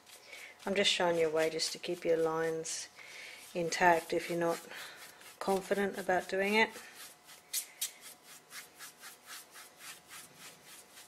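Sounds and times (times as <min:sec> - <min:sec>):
paintbrush scrubbing on canvas: 0:00.0 - 0:11.0.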